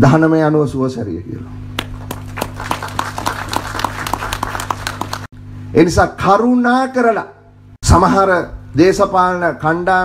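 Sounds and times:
steady low hum: 0:01.0 - 0:10.0
audience clapping: 0:01.8 - 0:05.3.

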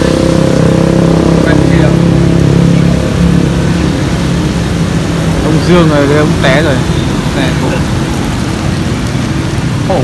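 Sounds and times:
rain on wet pavement: 0:00.0 - 0:10.0.

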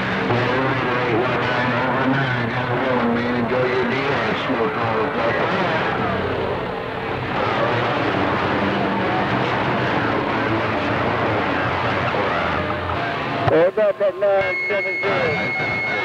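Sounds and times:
faint radio voices: 0:00.0 - 0:16.0
radio band noise: 0:00.0 - 0:16.0.

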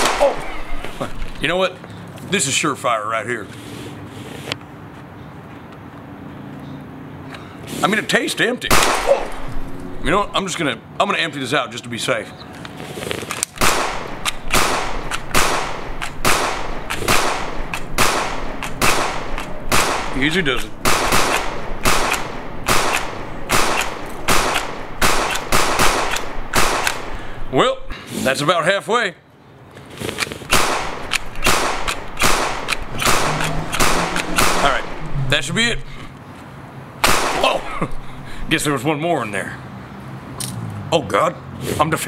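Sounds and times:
pistol shots echoing: 0:00.0 - 0:00.6, 0:08.7 - 0:09.5, 0:13.6 - 0:27.2, 0:30.5 - 0:35.0, 0:37.0 - 0:37.7.

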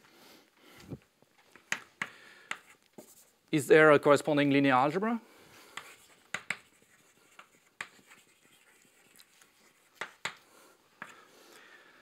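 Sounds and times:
chalk tapping on blackboard: 0:01.7 - 0:03.2, 0:05.7 - 0:11.2
faint chalk scratching: 0:02.0 - 0:03.4, 0:05.5 - 0:11.6.

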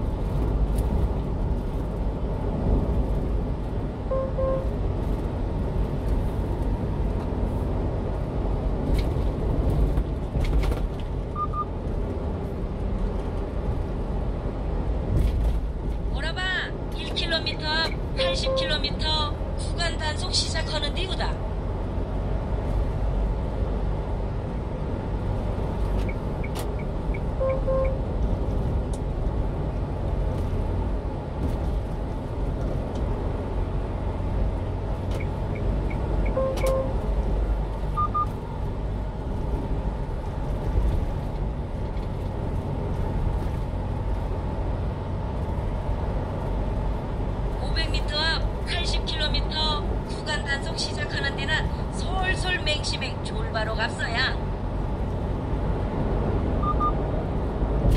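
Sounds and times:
truck engine and road rumble: 0:00.0 - 0:57.9
short electronic beeps: 0:04.1 - 0:04.7, 0:11.3 - 0:11.7, 0:26.0 - 0:28.0, 0:35.2 - 0:37.0, 0:37.9 - 0:38.4, 0:56.6 - 0:57.0.

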